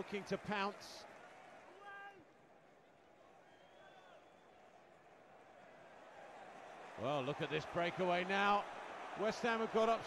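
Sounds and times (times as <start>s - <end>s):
faint stadium crowd noise: 0.0s - 10.0s.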